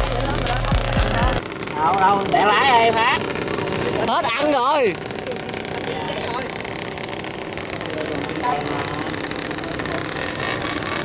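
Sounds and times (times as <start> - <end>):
engine idling: 0.0 - 11.0
faint voices: 0.0 - 11.0.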